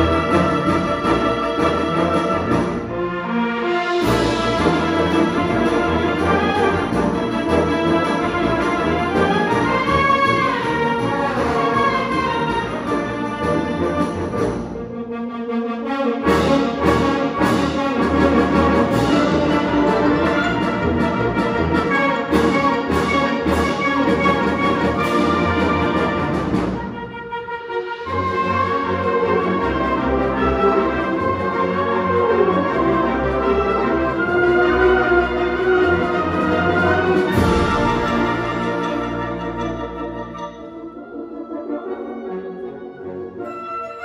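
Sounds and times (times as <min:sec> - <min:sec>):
concert band playing: 0:36.9 - 0:41.0.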